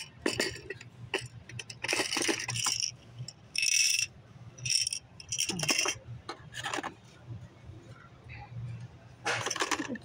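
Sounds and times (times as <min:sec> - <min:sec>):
plastic packages clicking and rattling: 0:00.2 - 0:02.9, 0:09.3 - 0:10.0.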